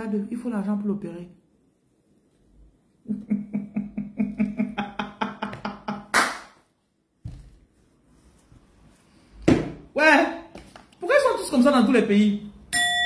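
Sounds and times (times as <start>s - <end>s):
woman laughing: 3.0s - 6.1s.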